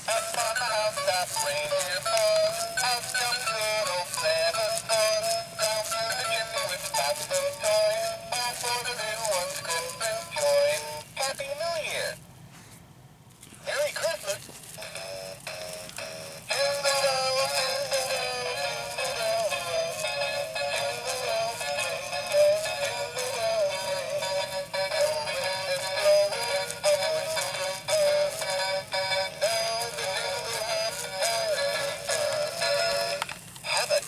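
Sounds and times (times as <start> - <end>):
toy singing through tinny speaker: 0.1 - 12.2, 14.8 - 34.0.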